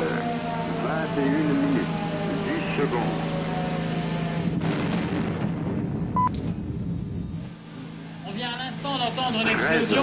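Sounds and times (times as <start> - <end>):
steady low hum: 0.0 - 10.0
explosive blast rumble: 4.4 - 7.6.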